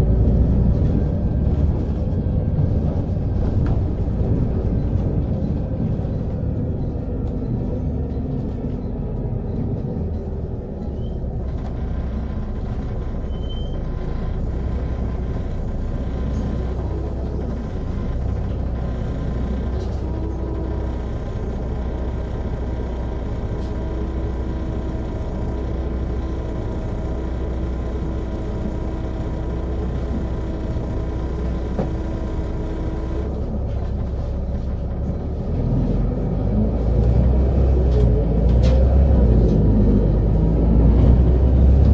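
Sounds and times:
bus engine drone: 0.0 - 41.9.

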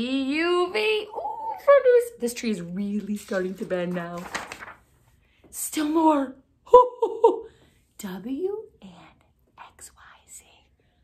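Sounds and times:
woman whispering: 8.0 - 11.0.

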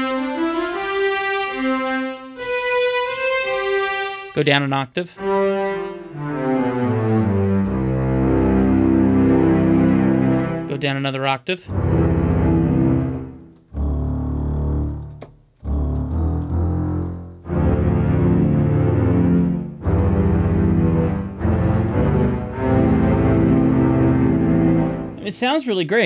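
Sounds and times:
held string chords: 0.0 - 25.5.

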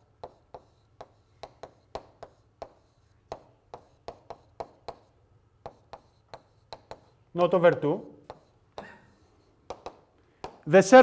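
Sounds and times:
chalk tapping on blackboard: 0.0 - 10.7.

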